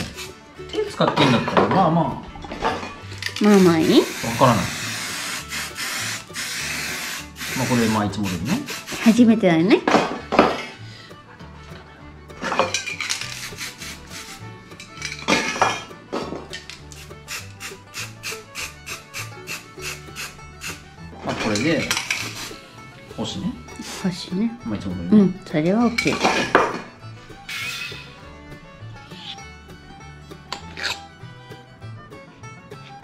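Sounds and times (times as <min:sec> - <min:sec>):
spray paint can hissing: 0:00.0 - 0:00.4, 0:03.4 - 0:09.2, 0:13.0 - 0:14.5, 0:16.8 - 0:20.9, 0:22.2 - 0:22.6.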